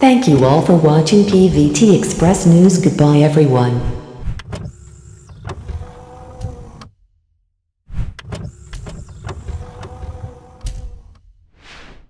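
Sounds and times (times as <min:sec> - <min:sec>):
mechanical hum: 0:03.8 - 0:06.9, 0:08.2 - 0:11.2.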